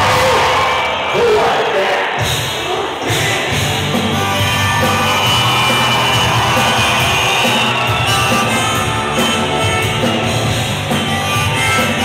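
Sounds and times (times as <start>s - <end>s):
live rock band playing: 2.2s - 12.0s.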